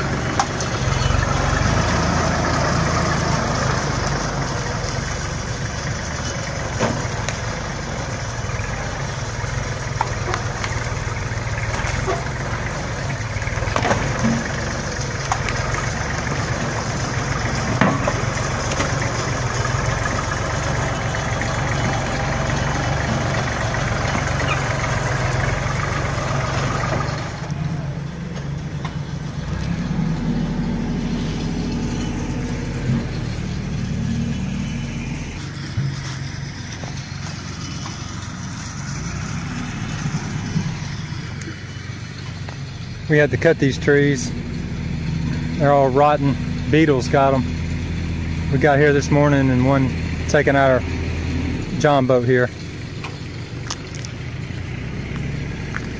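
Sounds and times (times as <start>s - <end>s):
diesel tractor engine running: 0.0s - 55.9s.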